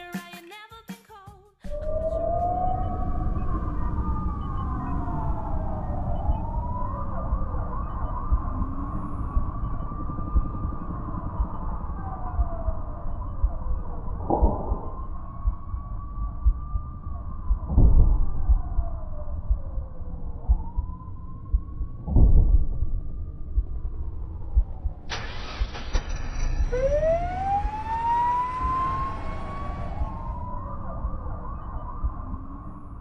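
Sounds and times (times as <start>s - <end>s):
ambulance siren wailing: 1.7s - 22.1s, 22.8s - 33.0s
low rumble: 1.8s - 33.0s
heavy thumps: 21.5s - 22.9s.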